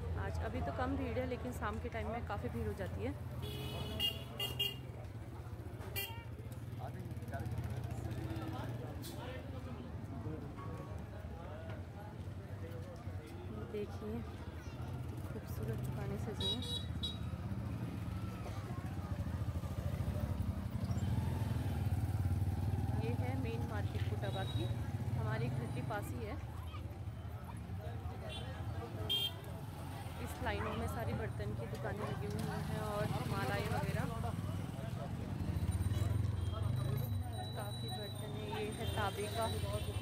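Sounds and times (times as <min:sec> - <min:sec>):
vehicle horns tooting: 0:03.4 - 0:04.9, 0:05.9 - 0:06.3, 0:16.4 - 0:17.4, 0:28.3 - 0:29.5.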